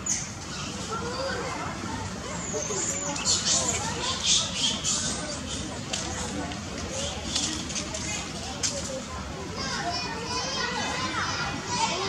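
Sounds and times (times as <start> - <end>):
outdoor background noise: 0.0 - 12.0.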